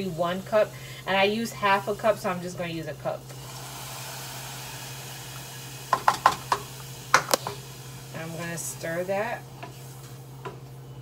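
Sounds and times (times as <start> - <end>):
saucepan sizzling: 0.0 - 11.0.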